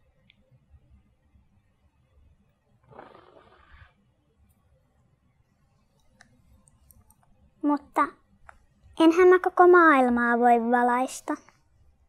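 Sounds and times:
child blowing out a match: 2.9 - 3.8.

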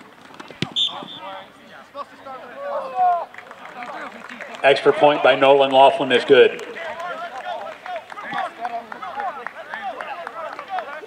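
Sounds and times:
foot kicking a football: 0.4 - 1.2
short shrill whistle blast: 0.8 - 1.3
people shouting: 2.4 - 3.3.

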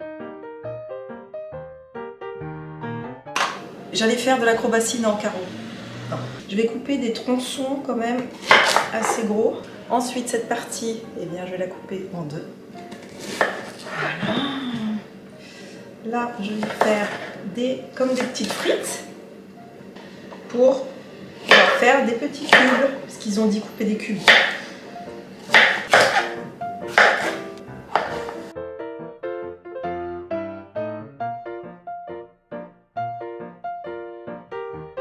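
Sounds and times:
piano background music: 0.0 - 35.0
knife cutting vegetable: 8.4 - 9.1, 12.9 - 14.2, 24.2 - 24.7, 25.4 - 28.4
knife striking chopping board: 8.4 - 9.2, 12.9 - 13.8, 21.5 - 21.9, 22.5 - 23.0, 24.2 - 24.7, 25.4 - 28.5.

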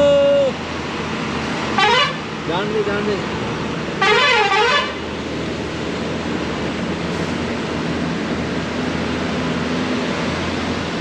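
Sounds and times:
truck musical horn warbling: 1.8 - 2.2, 4.0 - 5.0.

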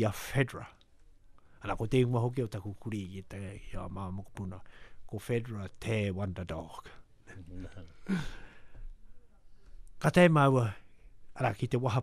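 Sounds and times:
man chuckling: 7.4 - 8.4.

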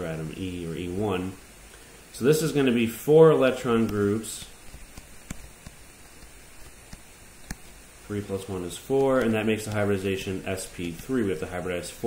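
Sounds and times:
faint recording hiss: 0.0 - 12.0
stylus ticking on tablet screen: 4.6 - 7.8.

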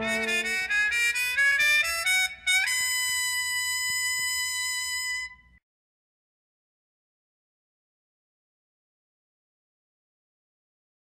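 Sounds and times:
jazz band playing: 0.0 - 1.2.

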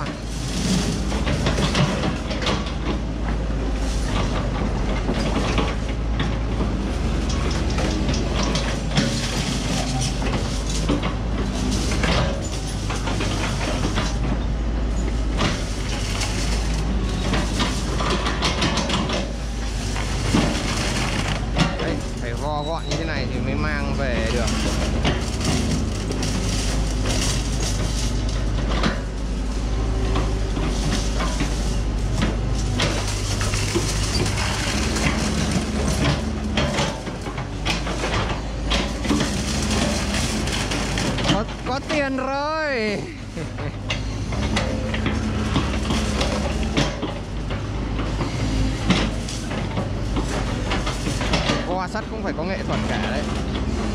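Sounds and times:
diesel engine drone: 0.0 - 53.9.

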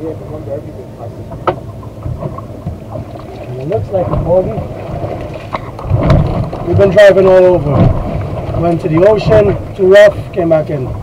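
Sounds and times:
wind and water rumble: 0.0 - 11.0.

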